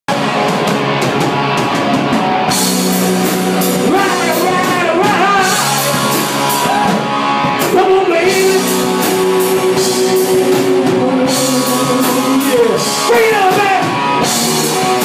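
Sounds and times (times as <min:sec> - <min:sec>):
live rock band playing: 0:00.1 - 0:15.0.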